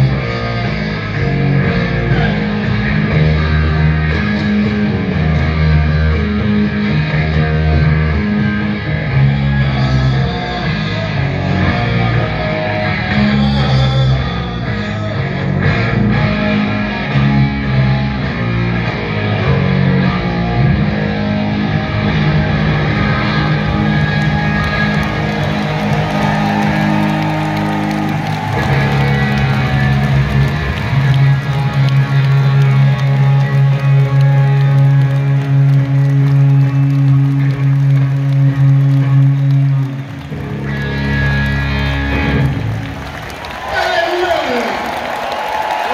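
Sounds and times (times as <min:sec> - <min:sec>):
bass guitar: 0:00.0 - 0:43.7
electric guitar chords: 0:00.0 - 0:45.9.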